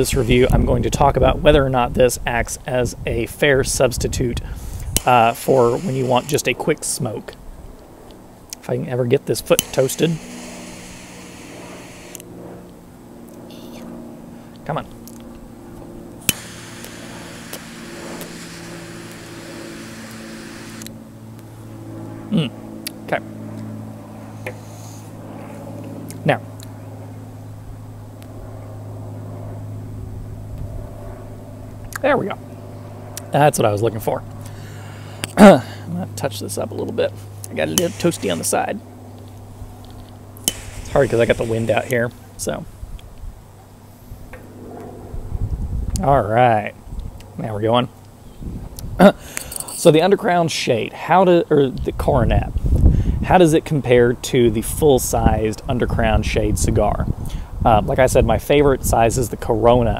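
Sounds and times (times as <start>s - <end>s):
wind rumble on microphone: 0.0s - 5.1s, 30.0s - 31.8s, 45.0s - 47.2s, 48.3s - 49.0s, 51.8s - 59.9s
jet flame hissing: 4.5s - 6.9s, 9.4s - 12.3s, 16.2s - 20.9s, 37.5s - 38.8s, 40.4s - 42.2s
torch lighter click: 9.6s - 12.3s, 16.2s - 21.0s, 40.5s - 42.0s.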